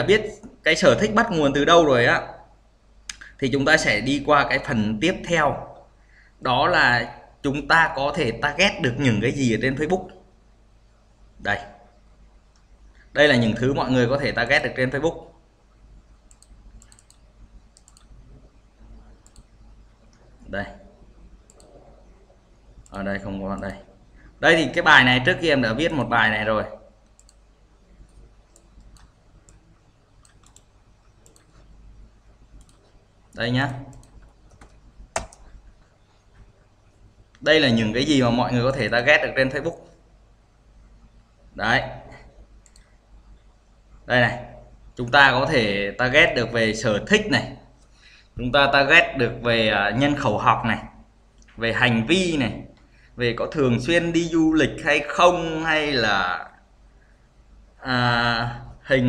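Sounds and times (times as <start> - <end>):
computer mouse clicking: 16.2 - 18.5, 19.2 - 20.3, 21.4 - 21.8, 27.0 - 31.8, 32.6 - 33.0, 33.7 - 36.6, 42.6 - 43.0.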